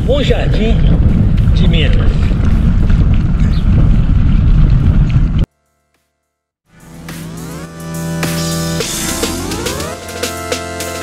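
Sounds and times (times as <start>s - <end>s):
wind rumbling on microphone: 0.0s - 5.5s.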